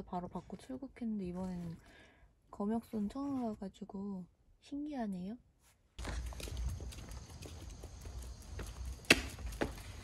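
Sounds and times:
person's footsteps: 0:06.0 - 0:10.0.

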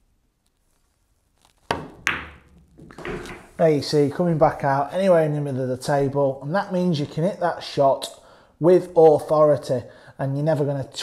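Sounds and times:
cue striking cue ball: 0:01.7 - 0:03.6.

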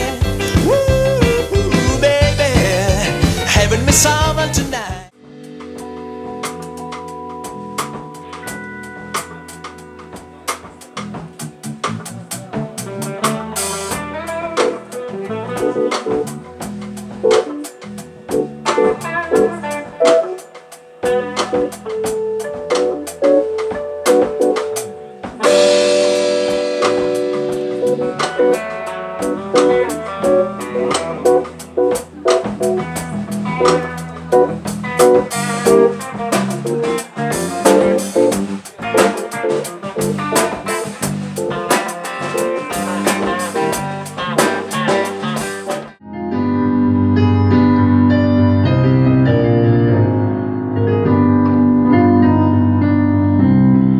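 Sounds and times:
electric guitar: 0:00.0 - 0:53.9
electric piano chords: 0:00.0 - 0:53.9
live band playing: 0:00.0 - 0:53.9.

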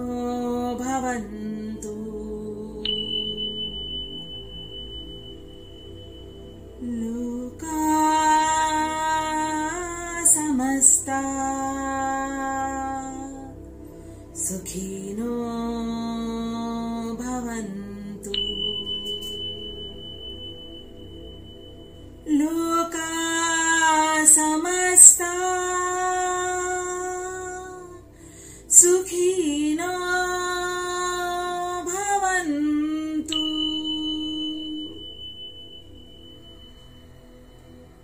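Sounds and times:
soft low musical drone: 0:00.0 - 0:38.0
high chime ringing: 0:02.7 - 0:11.1, 0:17.4 - 0:27.7, 0:31.8 - 0:38.0.

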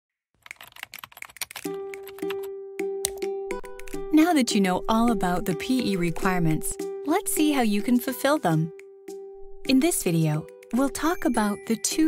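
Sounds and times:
keyboard key clicks: 0:00.4 - 0:03.2.

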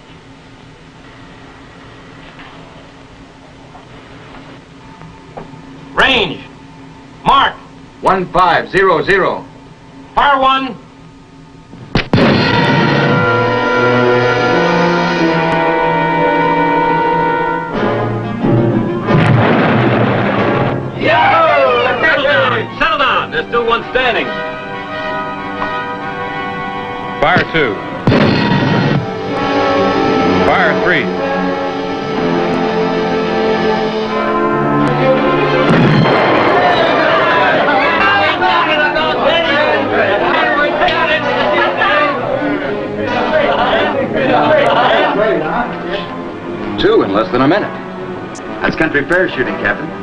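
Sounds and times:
explosion: 0:12.0 - 0:13.5, 0:19.0 - 0:21.0, 0:28.1 - 0:29.1, 0:35.7 - 0:37.5
orchestral music tense chord: 0:12.2 - 0:50.0
men cheering and talking: 0:21.0 - 0:24.3, 0:35.1 - 0:46.1.

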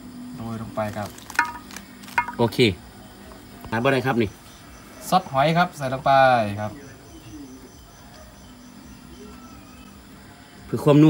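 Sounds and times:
high-pitched insect chirring: 0:00.4 - 0:02.6.

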